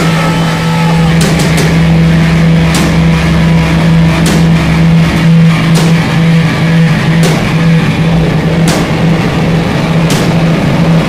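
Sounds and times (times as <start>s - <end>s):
rock band droning low note: 0.0s - 11.0s
drum hits: 1.0s - 11.0s.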